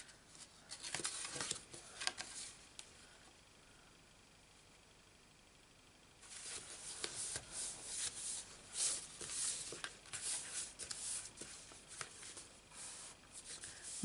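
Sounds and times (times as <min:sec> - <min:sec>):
cardstock rustling and scraping: 0:00.7 - 0:02.6, 0:06.2 - 0:14.0.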